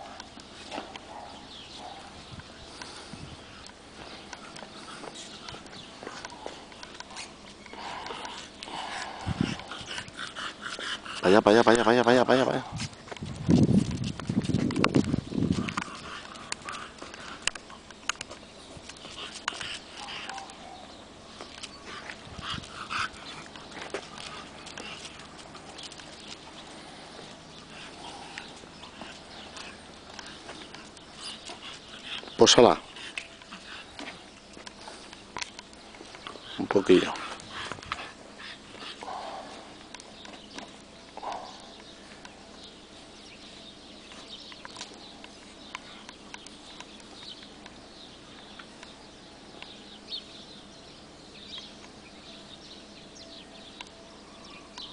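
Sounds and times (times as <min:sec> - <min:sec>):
puppy breathing and snuffling: 0:02.6 - 0:11.5, 0:21.5 - 0:40.6
puppy breathy sounds: 0:04.4 - 0:11.4.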